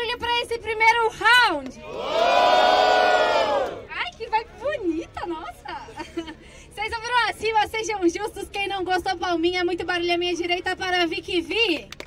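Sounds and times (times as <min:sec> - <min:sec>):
crowd shouts and voices: 0:01.7 - 0:04.7.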